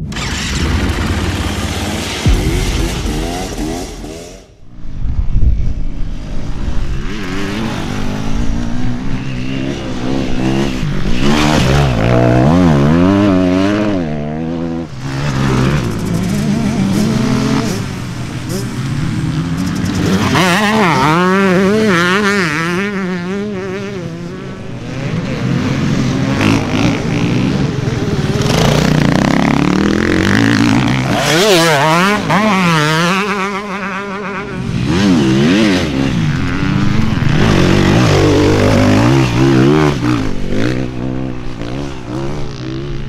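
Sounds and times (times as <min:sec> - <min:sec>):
dirt bike engines revving: 0:00.0 - 0:04.6, 0:05.6 - 0:43.0
intro sound effect with low thump: 0:00.0 - 0:06.9.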